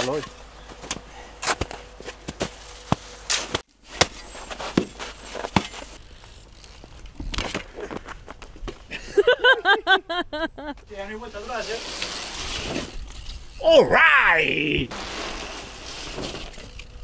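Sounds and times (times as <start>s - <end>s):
shovels scraping snow: 1.4s - 6.0s, 11.0s - 13.0s, 14.9s - 16.7s
bike rolling on asphalt: 3.9s - 9.2s, 10.8s - 13.6s, 14.9s - 17.0s
people laughing: 8.9s - 10.8s.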